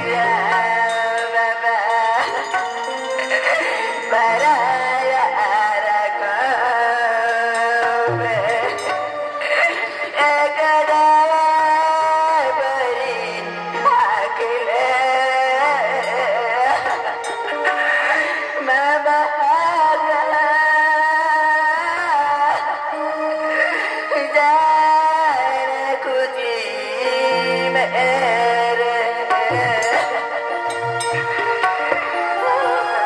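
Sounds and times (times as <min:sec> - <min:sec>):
person singing long wavering notes: 0:00.0 - 0:17.7, 0:26.4 - 0:33.0
instrumental accompaniment: 0:00.0 - 0:33.0.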